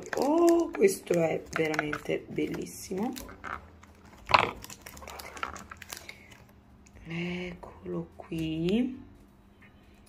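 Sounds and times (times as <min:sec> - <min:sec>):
cardboard crinkling and tearing: 0:03.1 - 0:06.4.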